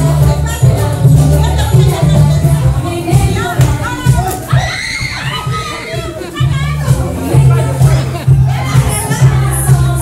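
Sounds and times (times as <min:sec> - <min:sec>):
children shouting and cheering: 0:03.3 - 0:10.0.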